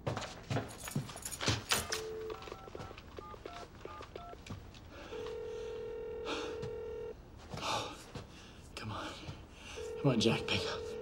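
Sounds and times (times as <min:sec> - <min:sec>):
telephone dial tone: 0:01.8 - 0:04.4, 0:05.1 - 0:07.2, 0:09.8 - 0:11.0
keypad beeps: 0:01.9 - 0:04.4
telephone ringback tone: 0:05.1 - 0:07.2, 0:09.8 - 0:11.0.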